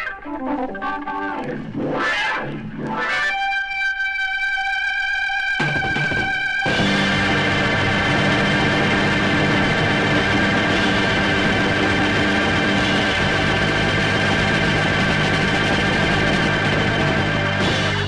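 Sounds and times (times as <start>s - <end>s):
rock music from vinyl record: 0.0s - 18.0s.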